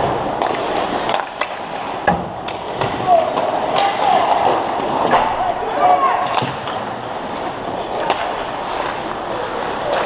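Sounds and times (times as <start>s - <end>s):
skate blades scraping ice: 0.0s - 5.4s, 6.3s - 10.0s
clacks of sticks and puck: 0.0s - 10.0s
players shouting: 2.8s - 6.7s.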